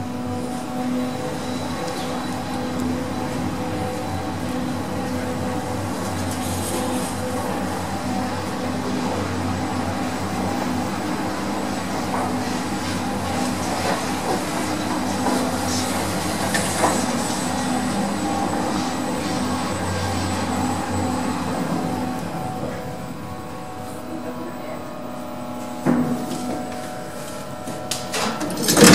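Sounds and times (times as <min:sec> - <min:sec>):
lift car rushing along rails: 0:00.0 - 0:28.9
lift mechanical hum: 0:00.0 - 0:28.9.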